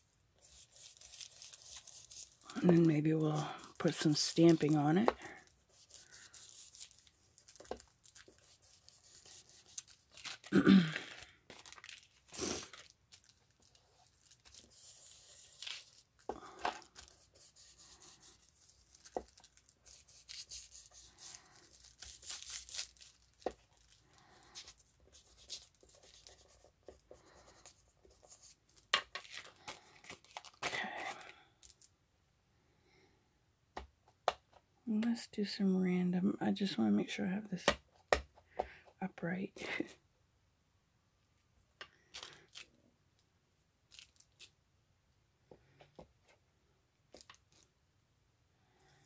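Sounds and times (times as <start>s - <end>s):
paper rustling and crinkling: 0.5s - 31.9s.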